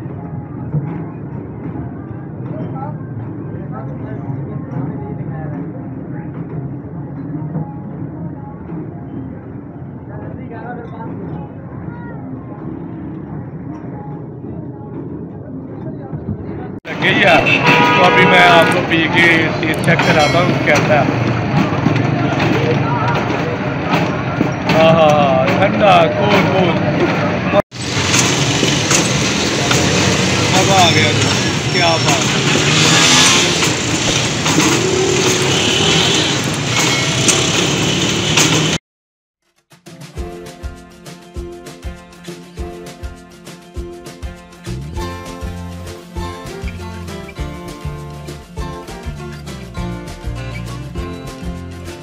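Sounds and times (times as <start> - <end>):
traffic rumble: 0.0 - 38.8
loud engine noise: 16.9 - 38.8.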